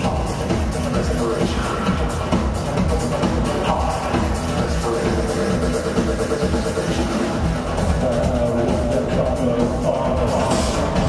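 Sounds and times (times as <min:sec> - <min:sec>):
loud electronic music with steady beat: 0:00.0 - 0:11.0.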